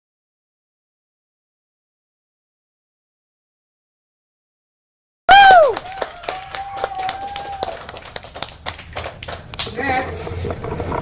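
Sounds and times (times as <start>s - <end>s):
whoop: 5.3s - 7.9s
hands clapping: 5.3s - 9.8s.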